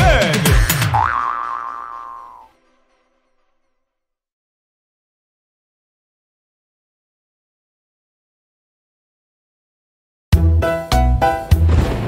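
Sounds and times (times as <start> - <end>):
cartoon boing: 0.6 - 2.5.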